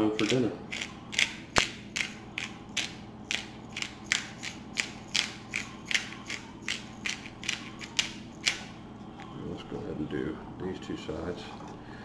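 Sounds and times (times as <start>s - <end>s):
spice grinder rasping: 0.0s - 8.6s.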